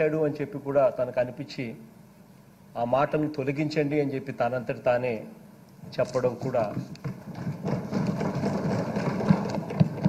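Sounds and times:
people thumping desks: 6.6 - 10.0.

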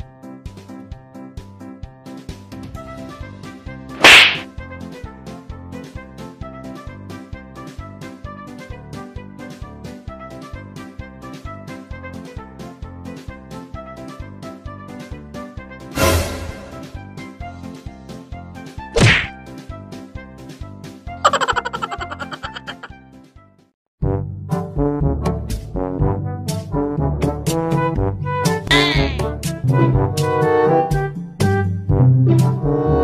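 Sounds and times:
loud sharp crack: 4.0 - 4.5, 19.0 - 19.3
stick whacking a person: 4.0 - 4.5, 19.0 - 19.4.

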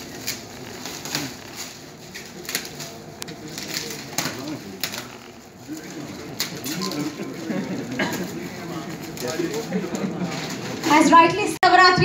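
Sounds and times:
foil gift wrap crinkling and tearing: 0.0 - 11.1
faint murmured voices: 0.0 - 12.0.

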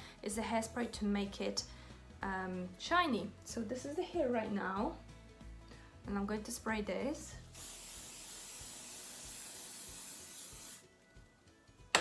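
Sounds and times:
hairspray spraying hiss: 7.5 - 10.9.

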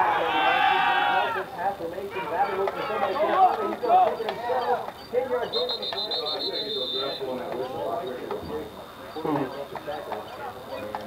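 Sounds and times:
people shouting: 0.0 - 1.5.

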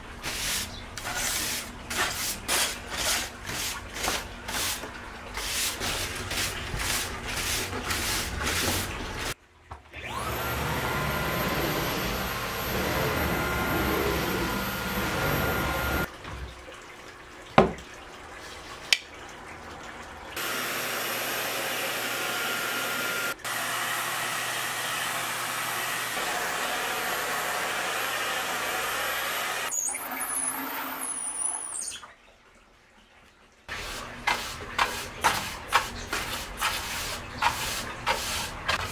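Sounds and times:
vacuum cleaner whining: 9.9 - 16.1, 20.4 - 31.7.

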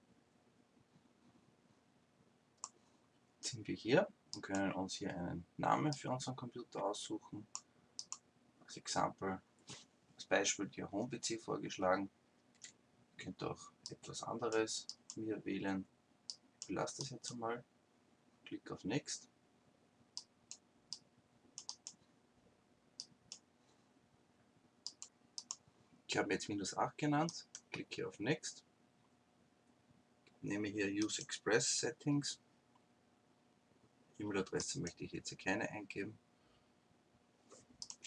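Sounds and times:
keyboard typing clicks: 7.5 - 8.2, 21.6 - 22.0, 37.8 - 38.0.

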